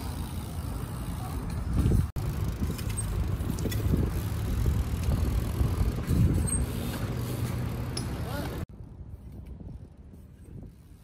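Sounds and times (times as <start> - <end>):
bike tyres rumbling over pavers: 0.0 - 8.6
bike clicking and rattling: 0.0 - 11.0.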